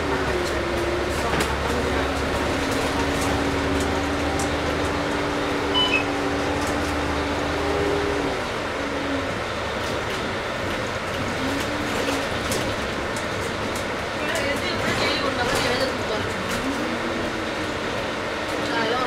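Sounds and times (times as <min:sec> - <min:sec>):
bus diesel engine drone: 0:00.0 - 0:19.0
road noise: 0:00.0 - 0:19.0.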